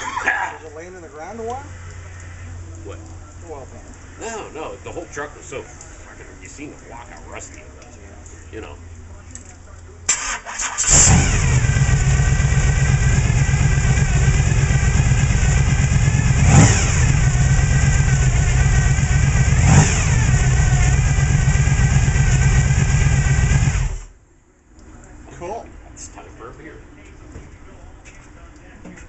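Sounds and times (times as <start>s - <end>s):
engine throttle blips: 10.1s - 24.2s
engine sputtering and running loud: 10.8s - 24.1s.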